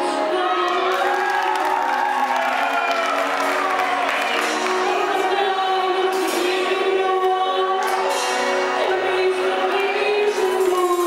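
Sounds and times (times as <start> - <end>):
crowd cheering: 0.4 - 6.1.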